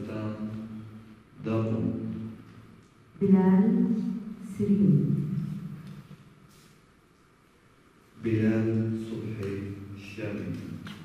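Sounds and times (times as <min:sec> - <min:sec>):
man reading aloud: 0:00.0 - 0:02.4, 0:08.2 - 0:11.0
person reading into a microphone: 0:00.0 - 0:06.6, 0:08.1 - 0:11.0.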